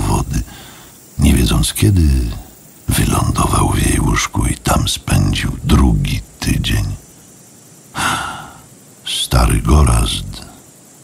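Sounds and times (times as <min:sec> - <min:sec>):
person sighing: 0:08.0 - 0:08.7.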